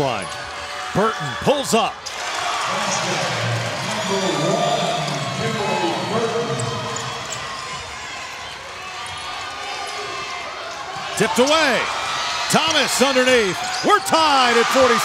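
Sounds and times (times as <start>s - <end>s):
crowd cheering and shouting: 0.0s - 15.0s.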